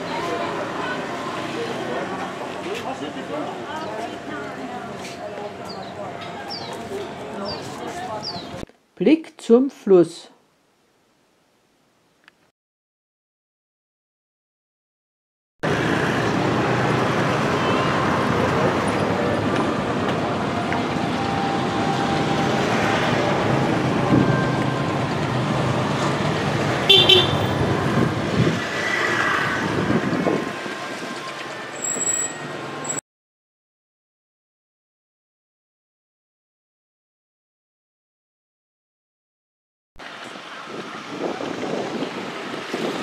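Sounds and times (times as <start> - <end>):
murmur of voices: 0.0 - 8.6
traffic running: 0.0 - 8.7, 15.6 - 33.0, 40.0 - 43.0
short car horn toots: 26.9 - 27.5.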